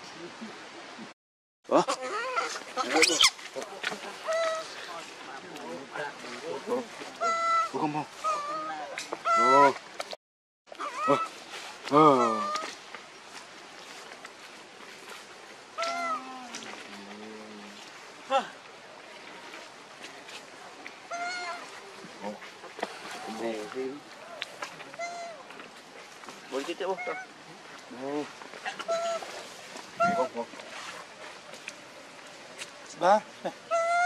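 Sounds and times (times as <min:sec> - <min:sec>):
macaques calling: 0:01.7 - 0:05.0, 0:06.7 - 0:09.8, 0:10.7 - 0:12.8, 0:15.8 - 0:17.7, 0:21.0 - 0:25.7, 0:26.5 - 0:27.6, 0:28.6 - 0:29.4, 0:30.0 - 0:30.6, 0:33.4 - 0:34.0.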